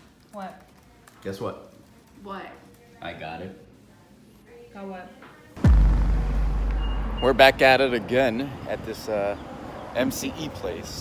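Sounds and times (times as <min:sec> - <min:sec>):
deep boom with falling sweep: 0:05.6 - 0:07.9.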